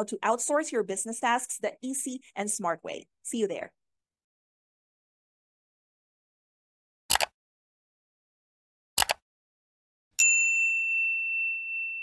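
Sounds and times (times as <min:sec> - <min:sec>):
bright bell ding: 0:10.2 - 0:12.0.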